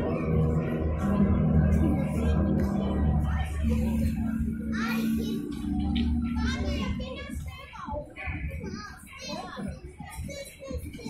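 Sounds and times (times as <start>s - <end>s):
low steady hum: 0.0s - 9.7s
children calling out and chattering: 0.0s - 11.0s.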